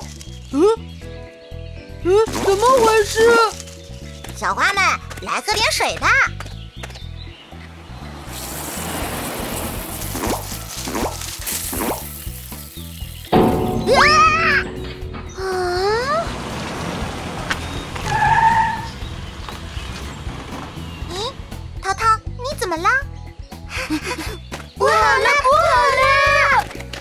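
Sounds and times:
cartoon background music: 0:00.0 - 0:06.4, 0:10.0 - 0:16.5, 0:20.6 - 0:27.0.

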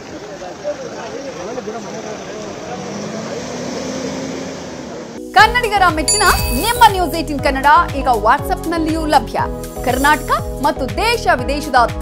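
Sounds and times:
car driving off: 0:00.0 - 0:05.3.

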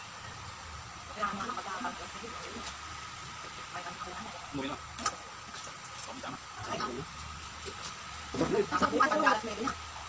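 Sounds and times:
people eating at a table: 0:00.0 - 0:10.0.

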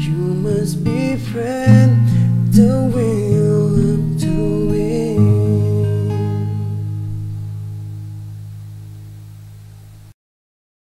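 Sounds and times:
acoustic guitar chord ringing: 0:00.0 - 0:10.1.

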